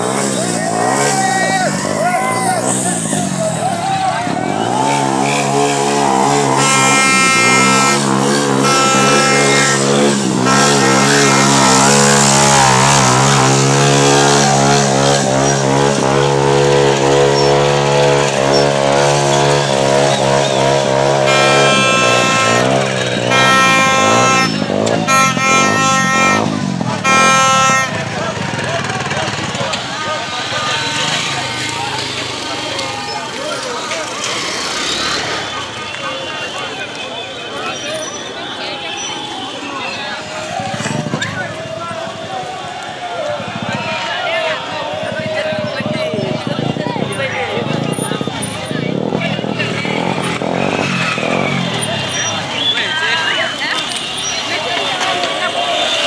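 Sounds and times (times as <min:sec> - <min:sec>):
motorcycle engine running: 0:00.0 - 0:36.2, 0:40.3 - 0:56.0
crowd shouting: 0:00.0 - 0:56.0
horn hooting blasts: 0:04.5 - 0:29.6.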